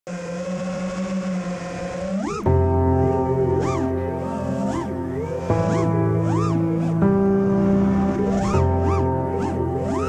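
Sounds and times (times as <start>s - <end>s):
quadcopter motors humming: 0.1s - 10.0s.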